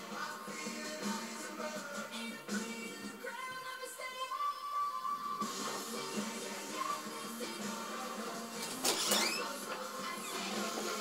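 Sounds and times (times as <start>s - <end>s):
background music: 0.0s - 11.0s
wooden door opening with squeak: 8.6s - 10.6s.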